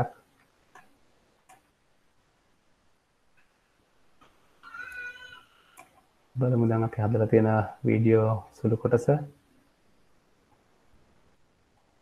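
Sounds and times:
faint clicks: 5.7s - 6.1s.

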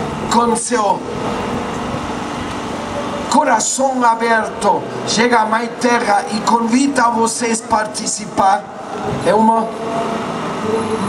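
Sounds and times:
city street hum and rumble: 0.0s - 11.0s.

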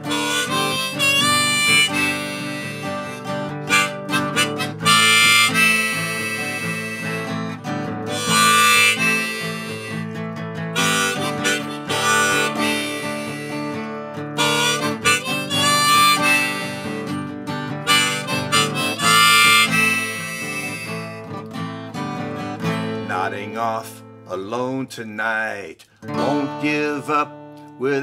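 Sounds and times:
harmonica playing: 0.0s - 23.8s
acoustic guitar: 0.0s - 28.0s.

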